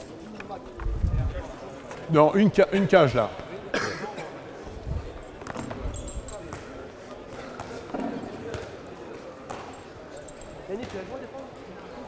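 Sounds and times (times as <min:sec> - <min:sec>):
players chattering: 0:00.0 - 0:12.0
balls bouncing on hall floor: 0:05.4 - 0:08.8, 0:10.7 - 0:11.2.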